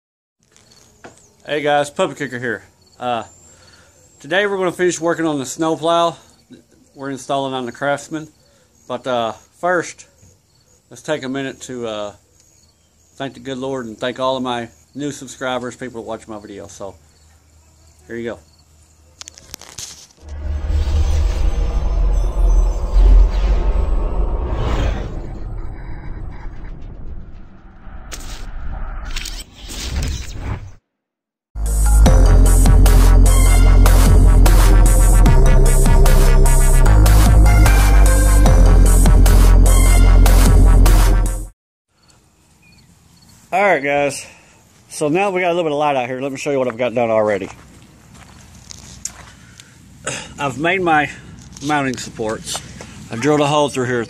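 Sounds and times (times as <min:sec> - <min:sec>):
deep rumble: 0:20.2 - 0:29.2
whoosh: 0:20.2 - 0:30.8
footsteps on gravel: 0:46.5 - 0:49.6, 0:51.3 - 0:53.1.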